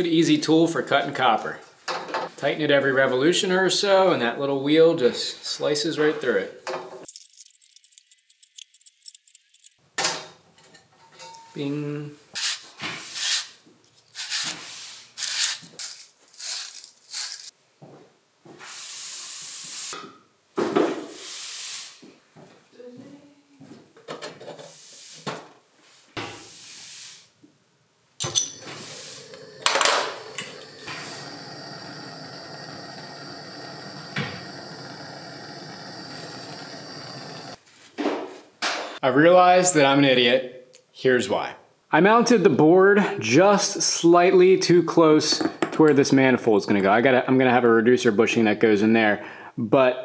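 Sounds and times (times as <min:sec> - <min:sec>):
wire brush scrubbing pipe: 0:15.2 - 0:17.5, 0:28.6 - 0:34.0
gas torch hissing: 0:28.6 - 0:37.6.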